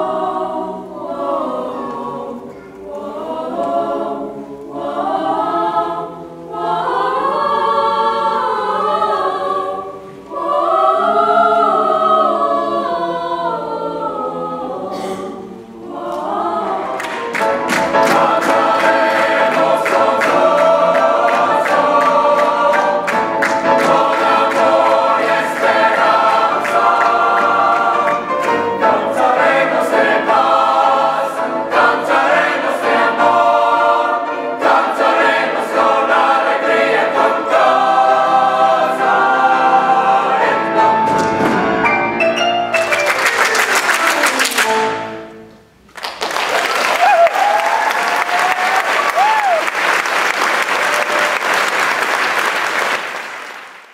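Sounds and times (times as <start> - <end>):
mixed choir singing: 0.0 - 42.2
sharp hand claps: 42.8 - 44.9.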